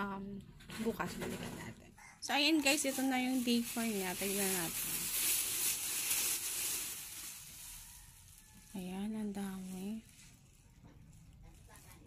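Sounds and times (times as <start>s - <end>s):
plastic bag rustling: 2.3s - 12.0s.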